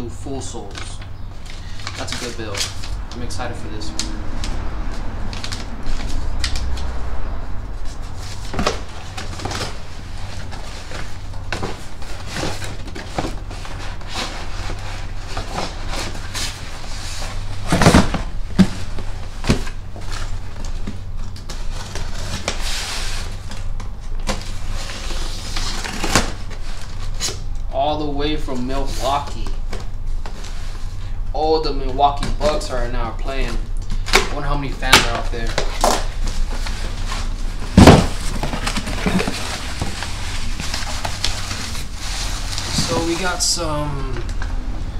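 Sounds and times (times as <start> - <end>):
low steady hum: 0.0 - 44.9
paper rustling: 33.5 - 44.4
cardboard boxes handled: 35.1 - 43.5
box thump: 37.7 - 40.0.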